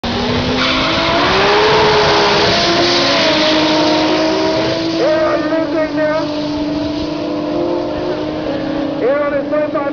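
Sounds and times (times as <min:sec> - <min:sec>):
race car engines at full throttle: 0:00.0 - 0:09.9.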